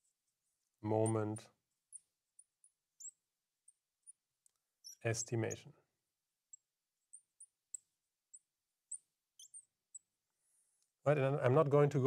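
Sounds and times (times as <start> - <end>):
marker pen squeaking on glass: 1.9 - 4.2, 4.8 - 5.2, 6.5 - 10.1.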